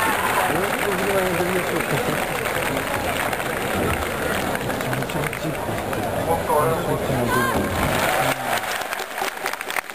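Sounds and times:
people talking nearby: 0:00.0 - 0:08.8
stadium crowd din: 0:00.0 - 0:09.9.

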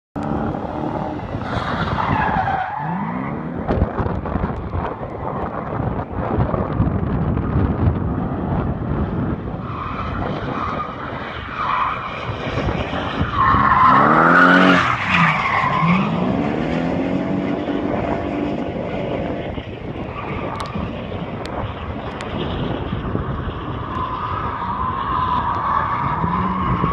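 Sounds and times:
car engine revving: 0:00.2 - 0:04.2, 0:12.6 - 0:19.5.

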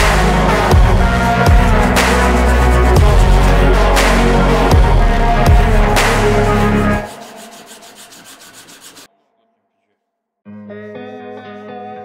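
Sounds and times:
sanding cloth rasping on wood: 0:00.4 - 0:04.8, 0:05.4 - 0:09.1.

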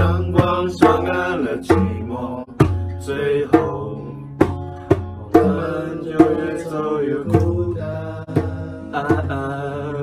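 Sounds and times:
man singing: 0:00.0 - 0:04.5, 0:05.2 - 0:10.0
djembe strikes: 0:00.0 - 0:09.7
acoustic guitar: 0:00.0 - 0:10.0.

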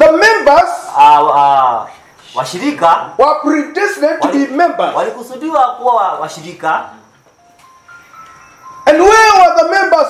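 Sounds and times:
thin high steady tone: 0:06.1 - 0:10.0
simple electronic melody: 0:07.4 - 0:09.1
man's voice: 0:08.8 - 0:10.0.

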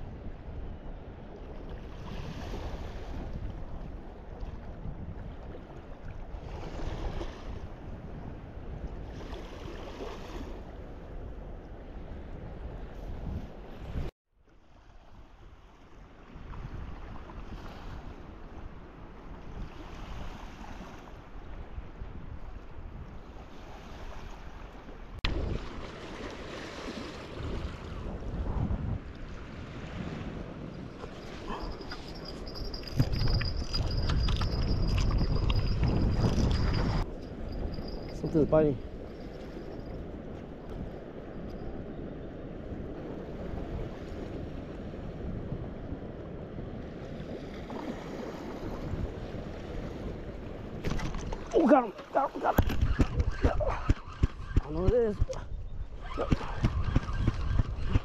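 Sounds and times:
wind buffeting microphone: 0:00.0 - 0:14.1, 0:15.1 - 0:58.0
small waves lapping on shore: 0:01.2 - 0:08.2, 0:09.0 - 0:11.2, 0:13.6 - 0:32.8, 0:42.8 - 0:55.4.

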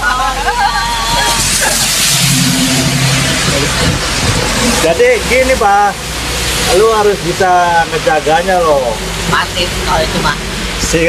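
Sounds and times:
traffic noise hiss: 0:00.0 - 0:11.0.

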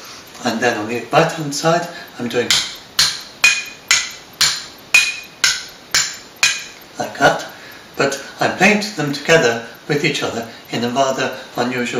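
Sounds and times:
stick tapping mugs: 0:01.5 - 0:07.2.

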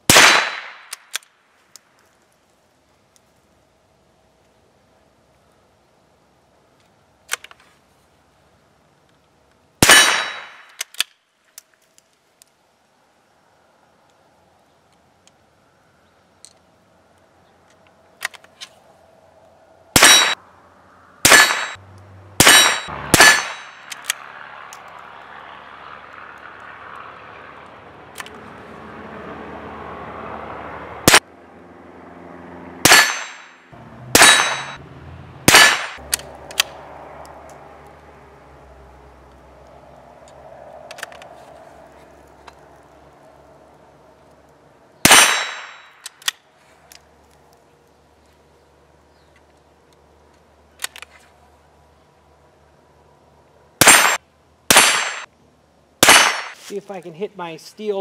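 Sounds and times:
rifle shots: 0:00.1 - 0:01.1, 0:09.8 - 0:10.8, 0:20.0 - 0:20.4, 0:21.2 - 0:21.8, 0:22.4 - 0:24.2, 0:32.8 - 0:33.5, 0:34.1 - 0:34.8, 0:35.4 - 0:36.0, 0:45.0 - 0:45.9, 0:53.8 - 0:55.3, 0:56.0 - 0:56.6.

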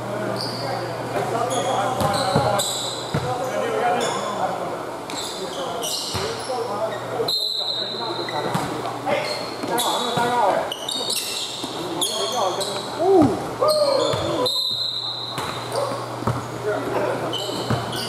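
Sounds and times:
sneaker squeaks: 0:00.1 - 0:04.4, 0:05.1 - 0:13.0, 0:13.6 - 0:16.6, 0:17.2 - 0:18.0
basketball bouncing on court: 0:02.0 - 0:03.4, 0:14.0 - 0:16.5, 0:17.5 - 0:18.0
players calling out: 0:09.2 - 0:16.2.

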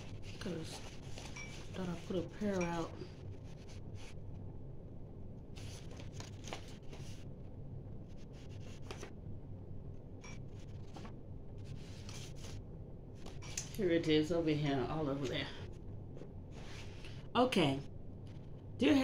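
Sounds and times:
papers rustling: 0:00.0 - 0:02.5, 0:05.6 - 0:07.2
low steady hum: 0:00.0 - 0:19.0.

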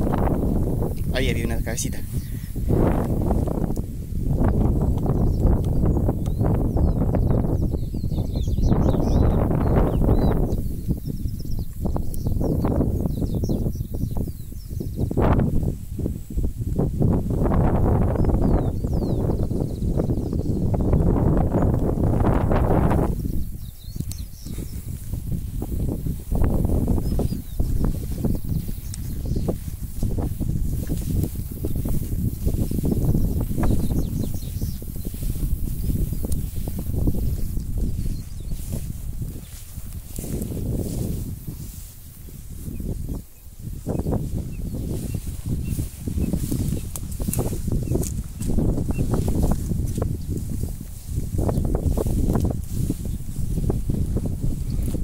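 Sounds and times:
grass rustling: 0:00.0 - 0:55.0
wind rumbling on microphone: 0:00.0 - 0:55.0
light footsteps: 0:24.0 - 0:54.2.

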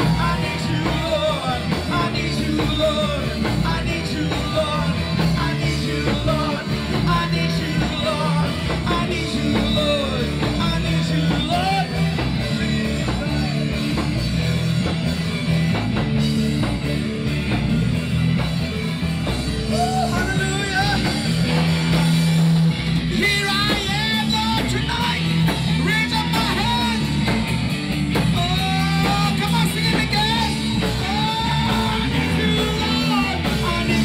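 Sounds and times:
person singing: 0:00.0 - 0:14.3, 0:19.5 - 0:22.1, 0:23.0 - 0:27.4, 0:28.2 - 0:34.0
rock band on electric guitars: 0:00.0 - 0:34.0.

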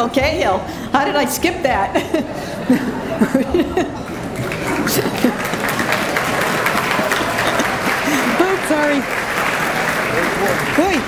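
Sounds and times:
voices: 0:00.0 - 0:11.0
audience applauding: 0:04.1 - 0:11.0.

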